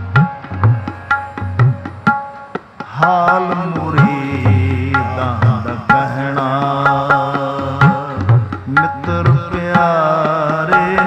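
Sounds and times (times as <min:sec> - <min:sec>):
harmonium: 0:00.0 - 0:11.0
sharp tabla strokes: 0:00.0 - 0:11.0.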